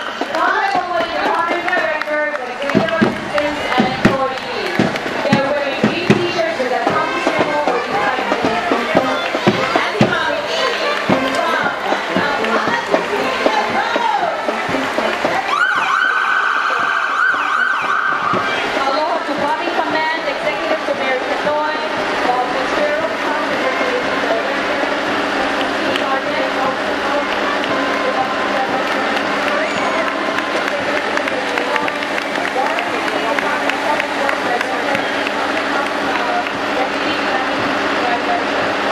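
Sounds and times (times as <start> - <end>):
crowd talking: 0.0 - 38.9
siren high steady wail: 15.3 - 18.8
sweeping siren tones: 15.4 - 18.8.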